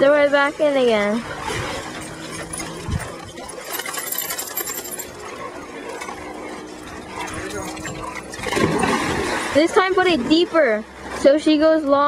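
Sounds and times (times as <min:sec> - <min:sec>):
water sloshing: 0:00.0 - 0:12.0.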